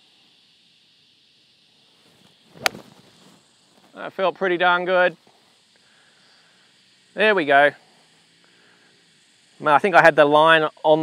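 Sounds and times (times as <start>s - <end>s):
golf iron striking ball: 2.5s - 3.1s.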